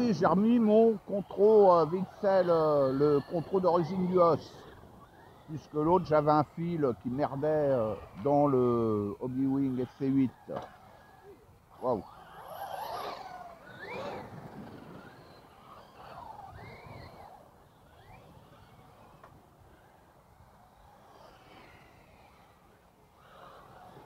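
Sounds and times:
electric motors whining: 0.0s - 24.0s.

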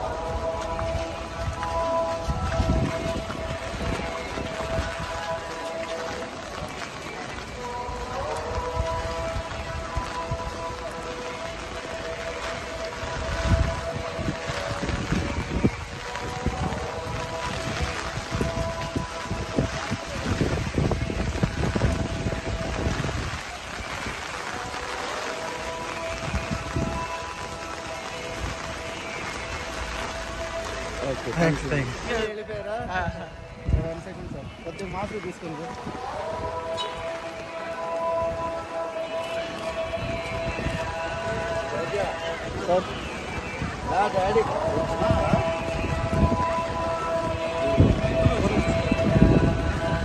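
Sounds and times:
music with long held notes: 0.0s - 50.0s
rain on wet pavement: 0.0s - 50.0s.

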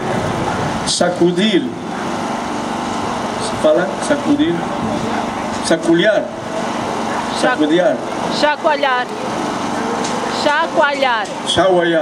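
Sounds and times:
street noise hum: 0.0s - 12.0s
man speaking through loudspeaker: 0.9s - 2.0s, 3.4s - 6.4s, 7.0s - 8.8s, 11.4s - 12.0s.

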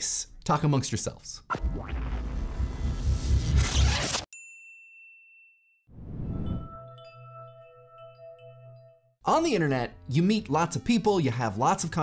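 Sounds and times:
high bell-like ding: 4.3s - 9.1s.

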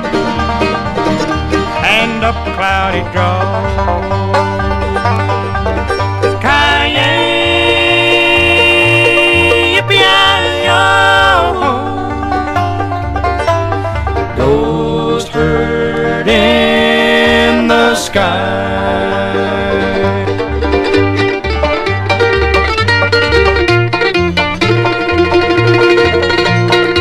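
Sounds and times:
banjo picking: 0.0s - 27.0s
bass line: 0.0s - 27.0s
sliding held notes: 0.0s - 27.0s.

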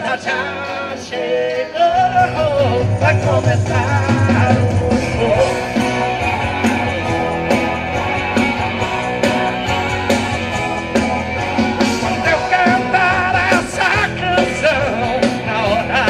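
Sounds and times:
live band playing: 0.0s - 16.0s.

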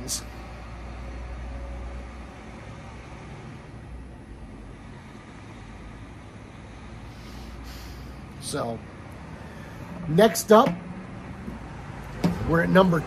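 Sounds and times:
low outdoor background rumble: 0.0s - 13.0s.

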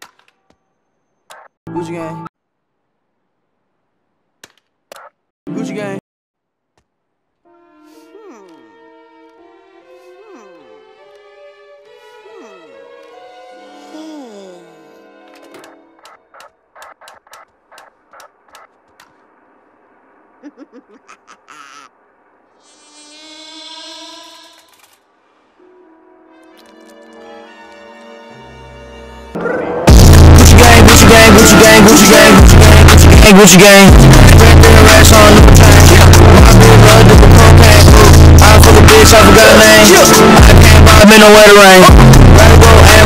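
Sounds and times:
snickering laugh: 20.4s - 21.9s
amplified fly buzzing: 22.6s - 24.7s.

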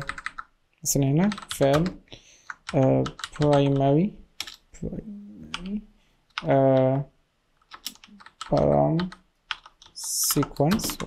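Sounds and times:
computer keyboard typing: 0.0s - 0.5s, 1.2s - 4.6s, 7.6s - 11.0s.

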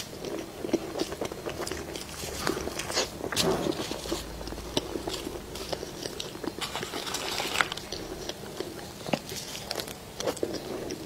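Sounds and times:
chewing and biting food: 0.0s - 11.0s.

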